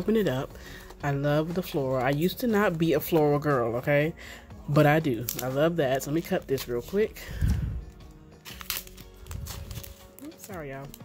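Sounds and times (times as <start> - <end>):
faint background music: 0.0 - 11.0
scissors snipping paper card: 5.1 - 7.6, 8.4 - 11.0.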